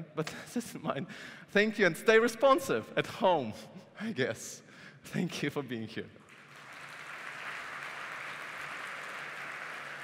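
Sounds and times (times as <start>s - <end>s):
audience applauding: 6.3s - 10.0s.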